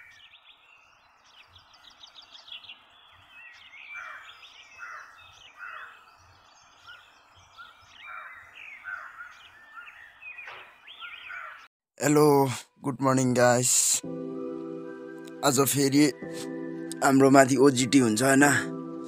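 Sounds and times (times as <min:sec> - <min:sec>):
birds chirping: 0:00.0 - 0:12.4, 0:13.0 - 0:19.0.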